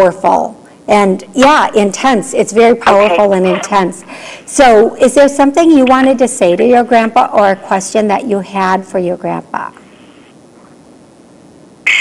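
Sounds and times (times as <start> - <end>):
phone line hiss: 9.8 - 12.0
harsh noise burst: 11.8 - 12.0.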